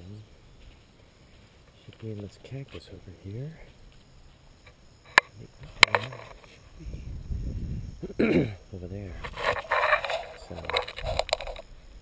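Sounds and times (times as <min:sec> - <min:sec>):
microphone handling rustle: 0:03.6 - 0:12.0.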